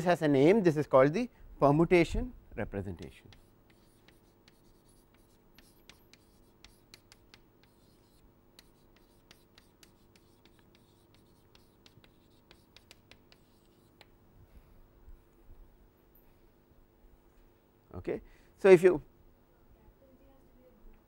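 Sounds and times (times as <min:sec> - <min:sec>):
chalk writing on blackboard: 0:03.0 - 0:14.2.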